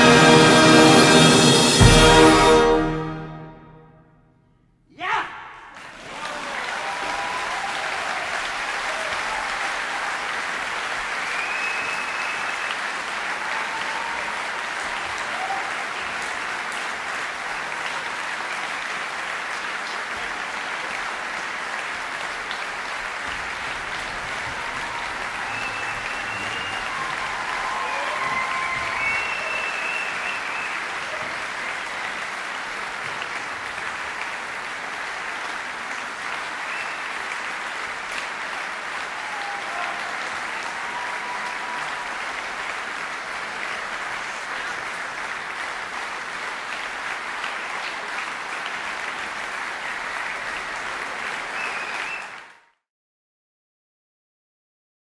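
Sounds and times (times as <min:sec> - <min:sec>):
large audience applauding: 0:05.6 - 0:52.8.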